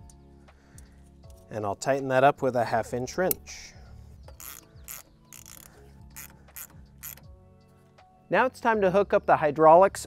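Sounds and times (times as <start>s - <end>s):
ratcheting wrench clicking: 4.3s - 7.3s.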